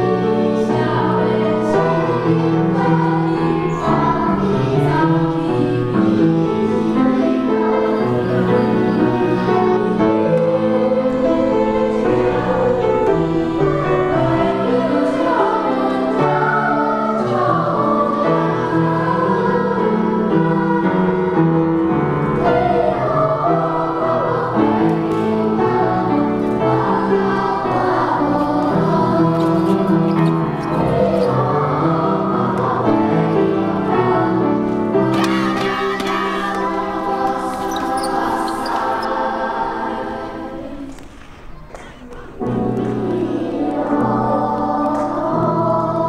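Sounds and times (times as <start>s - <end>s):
choir singing sustained chords: 0.0s - 46.0s.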